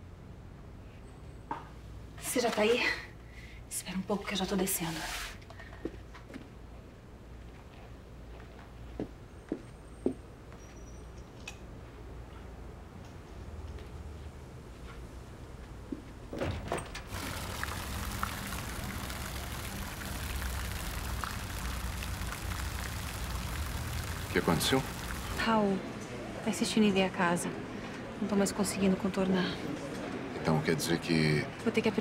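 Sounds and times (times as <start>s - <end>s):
fountain jets splashing into water: 17.1s - 25.5s
hissy rustle: 17.1s - 25.5s
steady low hum: 17.1s - 25.9s.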